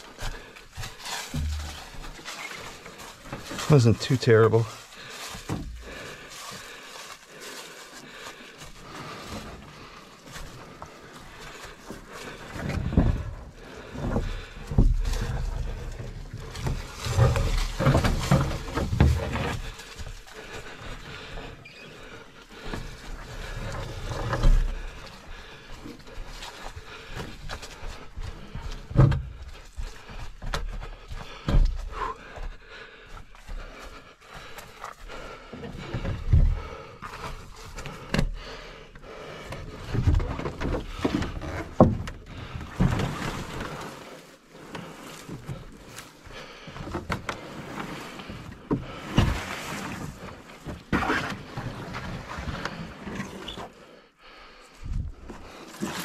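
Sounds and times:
footsteps on trail: 0.0s - 41.6s.

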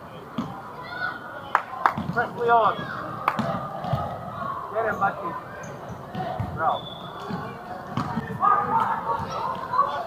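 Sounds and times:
ball kicked and bouncing: 7.3s - 8.4s.

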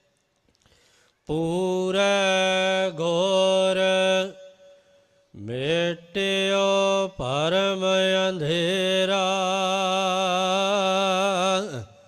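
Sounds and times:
man chanting melodically: 1.3s - 4.6s, 5.4s - 12.0s.

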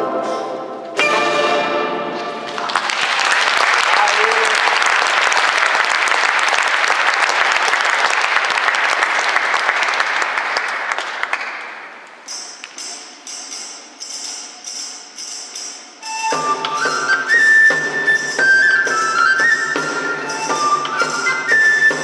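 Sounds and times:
audience clapping: 2.4s - 12.2s.

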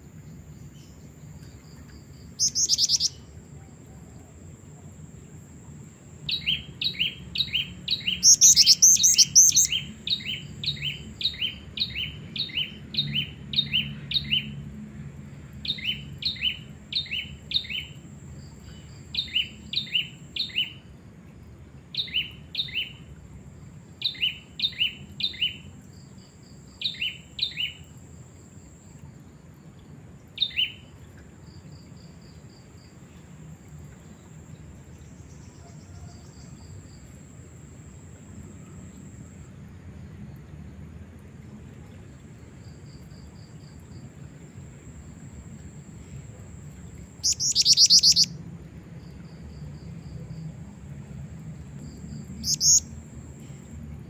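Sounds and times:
bird chirping high notes: 2.4s - 3.1s, 47.2s - 48.3s, 52.4s - 52.8s
faint high whine: 31.1s - 40.4s, 41.2s - 54.0s.

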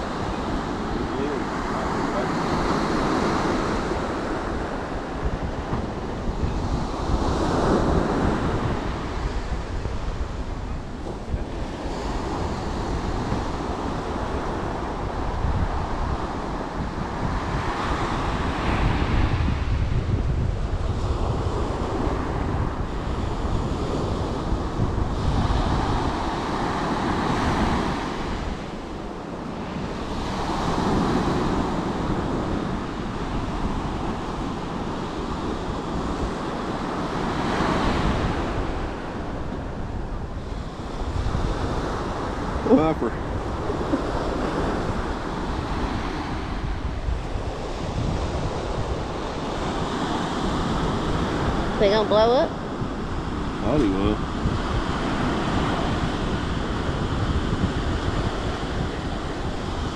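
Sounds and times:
ocean surf breaking on beach: 0.0s - 59.9s
wind buffeting microphone: 0.0s - 59.9s.

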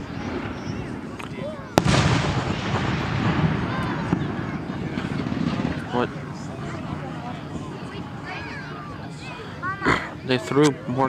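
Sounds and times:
faint firework pops: 0.2s - 5.9s
firework boom with rumbling echo: 1.8s - 7.8s.

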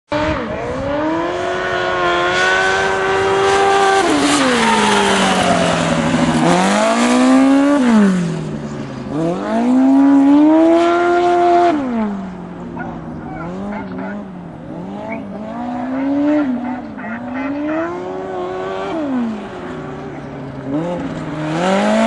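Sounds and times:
race car engine revving: 0.1s - 22.0s.

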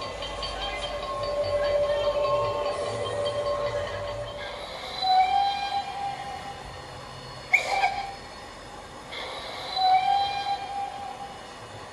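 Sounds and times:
locomotive whistle blasts: 5.0s - 6.6s, 7.5s - 8.2s, 9.7s - 11.3s.

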